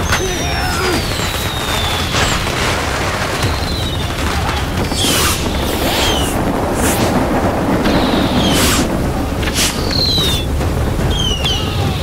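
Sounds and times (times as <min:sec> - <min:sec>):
dense rushing noise: 0:00.0 - 0:12.0
falling whistle-like tones: 0:00.8 - 0:02.6, 0:03.4 - 0:04.2, 0:04.9 - 0:07.2, 0:07.8 - 0:08.9, 0:09.5 - 0:10.5, 0:11.1 - 0:11.7
sharp whooshes: 0:04.8 - 0:10.5.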